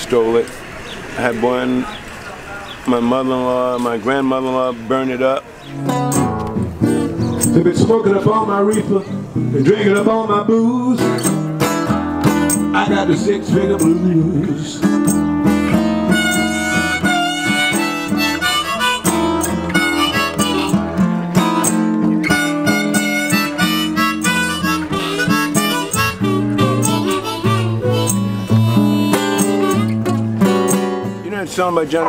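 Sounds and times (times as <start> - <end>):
strummed acoustic guitar: 3.0 - 32.0
blues harmonica: 5.6 - 31.3.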